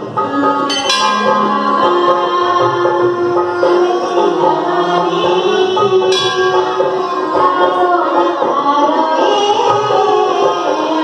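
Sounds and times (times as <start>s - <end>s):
devotional music: 0.0s - 11.0s
metal bell ringing: 0.7s - 2.7s, 6.1s - 7.1s.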